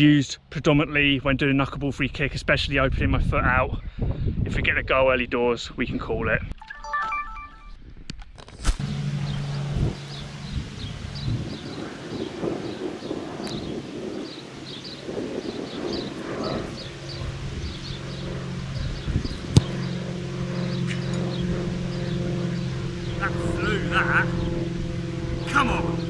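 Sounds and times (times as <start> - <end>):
birds chirping: 8.8 - 26.0
steady low hum: 8.8 - 26.0.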